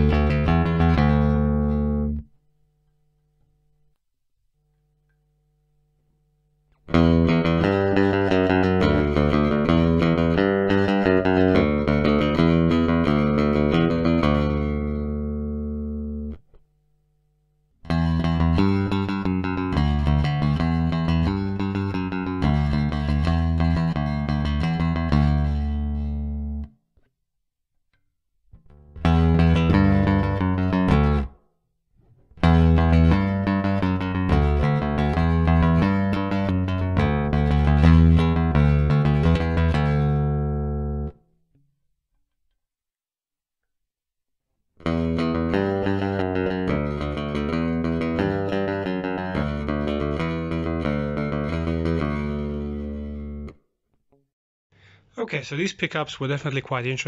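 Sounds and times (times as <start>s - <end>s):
electric bass played fingerstyle: 0.0s - 2.4s, 6.7s - 16.6s, 17.8s - 26.8s, 28.5s - 41.3s, 44.8s - 53.7s.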